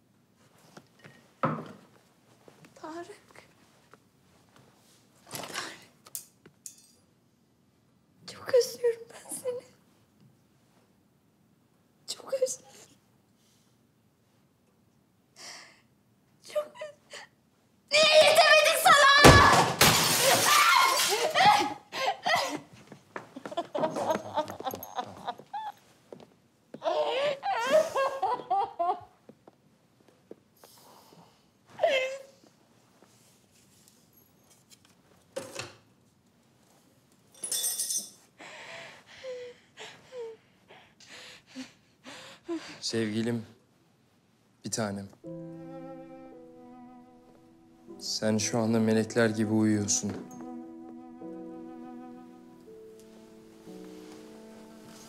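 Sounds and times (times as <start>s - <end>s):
light metallic clink: 6.1s - 7.1s, 37.3s - 38.2s.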